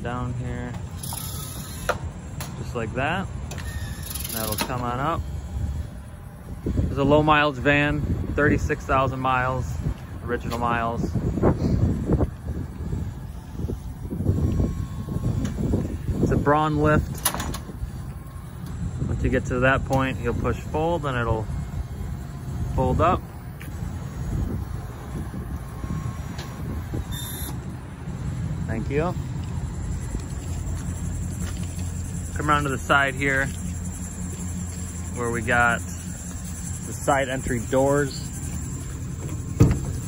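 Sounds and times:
faint steady whine: 0.0 - 40.0
van engine idling: 0.0 - 40.0
hydraulic pump rumbling: 0.7 - 40.0
wind on microphone: 5.6 - 19.5, 21.6 - 27.8.

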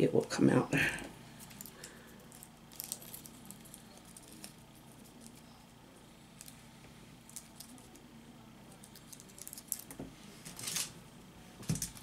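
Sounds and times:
aluminum foil crinkling: 1.4 - 5.7, 7.2 - 8.0, 8.7 - 11.0.

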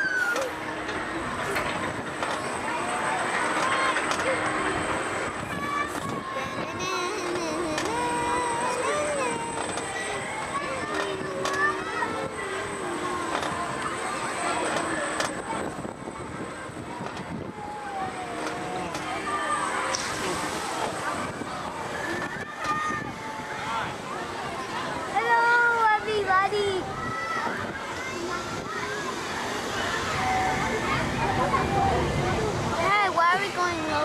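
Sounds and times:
amusement ride rushing: 0.0 - 34.0.

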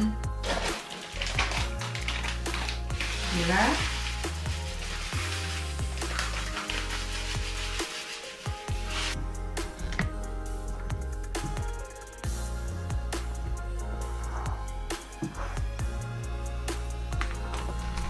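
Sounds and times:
background music: 0.0 - 18.0
sugar pouring into a bowl: 0.4 - 9.2.

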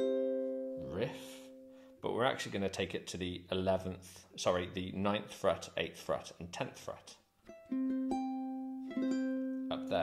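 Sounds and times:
ukulele played fingerstyle: 0.0 - 0.9, 7.4 - 10.0.

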